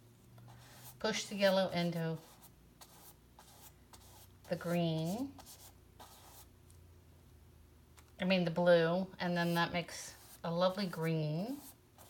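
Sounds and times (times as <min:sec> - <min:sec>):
paintbrush scratching on canvas: 0:00.4 - 0:06.5, 0:09.4 - 0:12.0.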